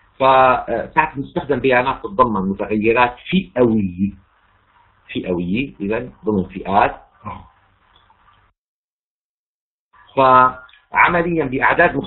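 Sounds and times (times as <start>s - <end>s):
faint hiss: 0.0s - 8.5s.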